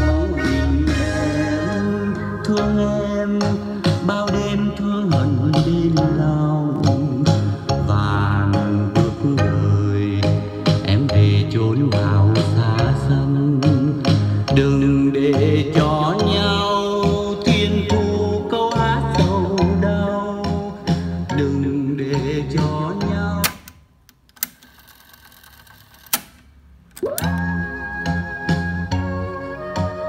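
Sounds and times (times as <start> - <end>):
song playing from cassette: 0.0 - 23.8, 27.0 - 30.0
tape deck button clicks: 23.4 - 24.9, 25.9 - 27.5.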